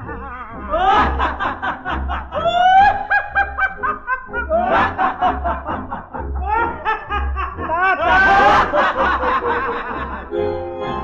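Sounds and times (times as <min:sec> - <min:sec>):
people laughing: 0:00.0 - 0:11.0
tango band playing: 0:08.7 - 0:11.0.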